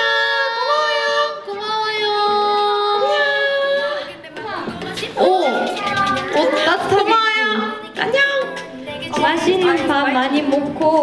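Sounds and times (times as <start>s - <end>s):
woman's voice through microphone: 6.4s - 11.0s.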